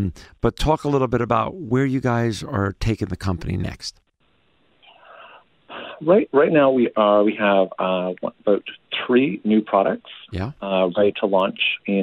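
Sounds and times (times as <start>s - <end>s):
man speaking: 0.0s - 4.0s, 6.0s - 12.0s
breath over telephone line: 4.9s - 6.0s.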